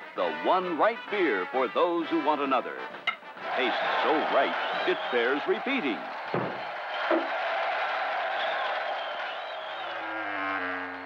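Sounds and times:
dull thump: 6.3 - 7.3.

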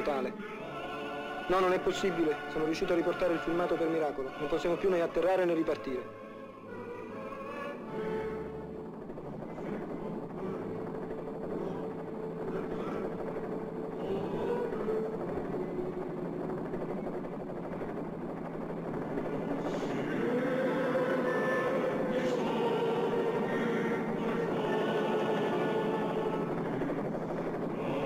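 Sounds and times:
steady mechanical drone: 0.0 - 28.0.

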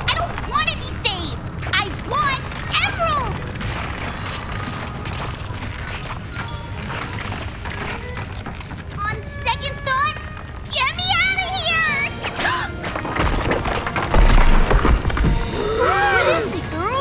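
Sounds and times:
cartoon background music: 6.3 - 13.9, 15.2 - 17.0.

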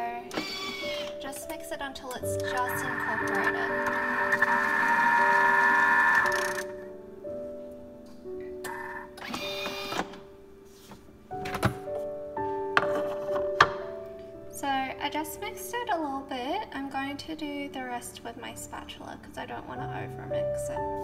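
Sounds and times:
soft background music: 0.0 - 21.0
food processor motor whining: 0.3 - 1.2, 2.5 - 6.8, 8.7 - 10.1.

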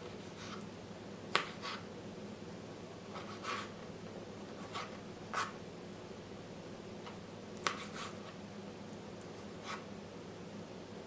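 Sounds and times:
faint steady hum: 0.0 - 11.0
knife cutting and scraping mat: 3.1 - 3.8, 4.6 - 5.6, 7.6 - 8.4.

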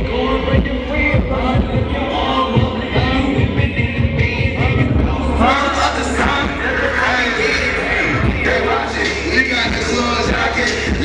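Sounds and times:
hip-hop beat with bass kicks: 0.0 - 11.0
rapping into a microphone: 0.0 - 11.0.

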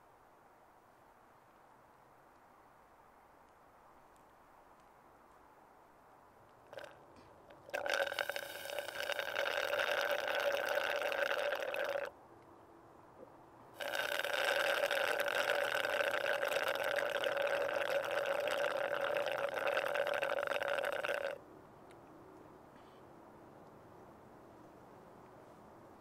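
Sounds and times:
slurping through a drinking straw: 6.7 - 7.0, 7.6 - 12.1, 13.8 - 21.4.

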